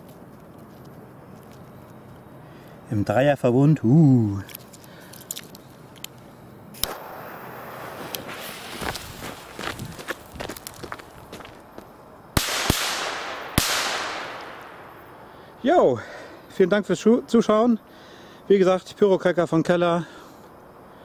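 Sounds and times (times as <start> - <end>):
firecracker fuse hissing: 6.7 - 10.3
firecracker bangs with echo: 6.8 - 8.6, 12.4 - 15.2.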